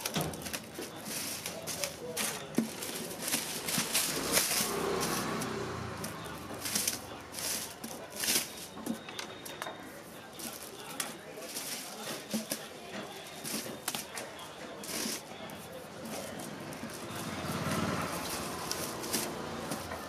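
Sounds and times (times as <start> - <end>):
paper rustling and crinkling: 0.0 - 20.0.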